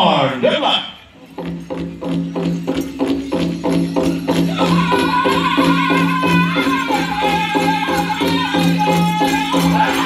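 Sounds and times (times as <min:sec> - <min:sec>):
powwow drum steady beat: 0:01.1 - 0:10.0.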